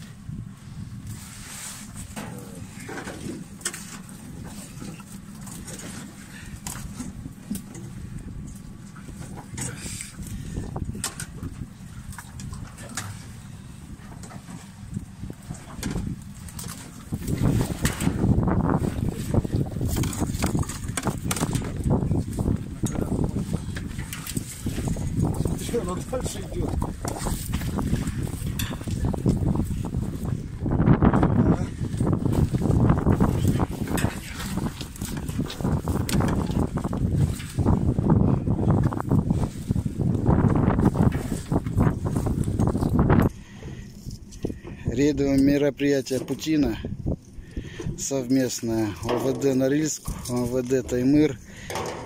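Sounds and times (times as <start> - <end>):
fishing net rustling and clicking: 14.1 - 30.3, 32.0 - 38.0.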